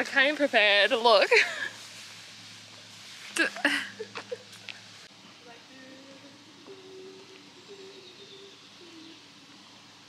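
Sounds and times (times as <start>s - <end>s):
outdoor background hiss: 0.0s - 10.0s
person humming: 5.8s - 9.3s.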